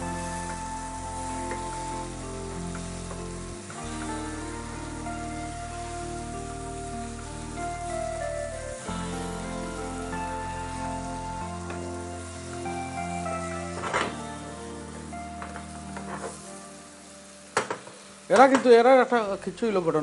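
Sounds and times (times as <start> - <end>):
background music with held chords: 0.0 - 20.0
fish curry sizzling in pan: 0.0 - 20.0.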